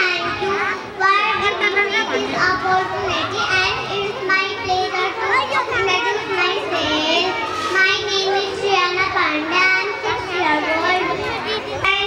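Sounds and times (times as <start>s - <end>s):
child speaking over microphone: 0.0s - 12.0s
children chattering: 0.0s - 12.0s.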